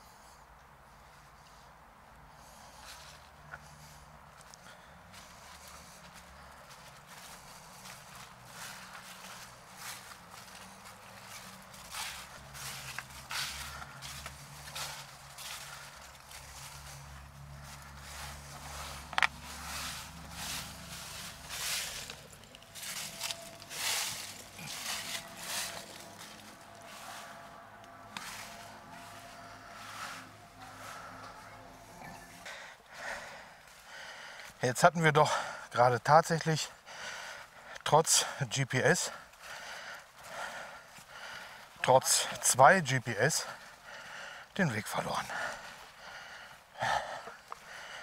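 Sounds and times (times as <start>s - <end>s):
footsteps on leafy path: 2.4s - 34.6s, 36.5s - 48.0s.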